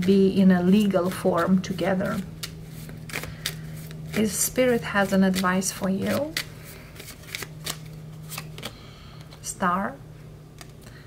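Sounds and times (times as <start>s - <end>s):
cards being shuffled: 0.0s - 9.5s, 10.5s - 10.9s.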